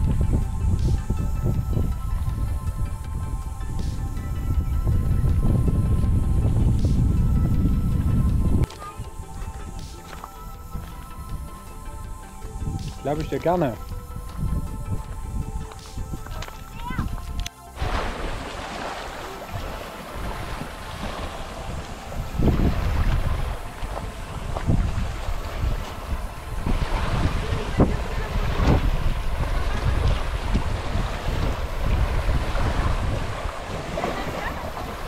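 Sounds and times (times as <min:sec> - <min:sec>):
small waves lapping: 0:00.0 - 0:35.0
wind buffeting microphone: 0:00.0 - 0:35.0
sharp water splashes: 0:15.6 - 0:35.0.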